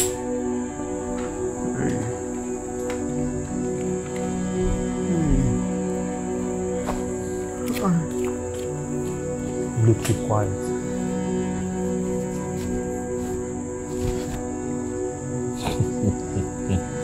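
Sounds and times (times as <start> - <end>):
crickets chirping: 0.0 - 17.0
low sustained music score: 0.0 - 17.0.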